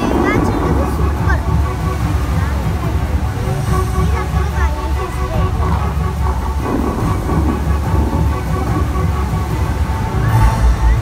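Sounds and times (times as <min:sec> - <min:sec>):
fountain water jets rushing: 0:00.0 - 0:11.0
music with held notes: 0:00.0 - 0:11.0.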